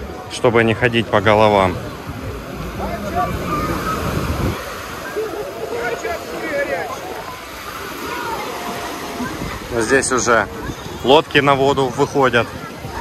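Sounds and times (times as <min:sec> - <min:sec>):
waves breaking on beach: 0:00.0 - 0:13.0
people talking: 0:02.6 - 0:13.0.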